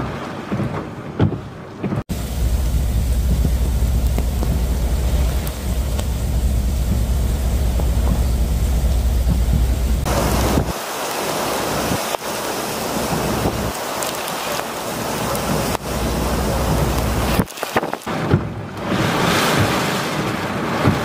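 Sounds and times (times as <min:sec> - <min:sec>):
heavy rain pouring: 0:02.1 - 0:21.0
storm wind gusting: 0:02.1 - 0:21.0.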